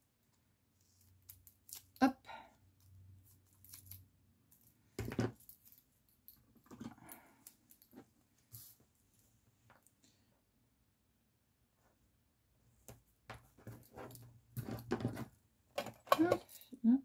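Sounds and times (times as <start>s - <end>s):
soft rustling of strip handled: 2.6s - 10.2s.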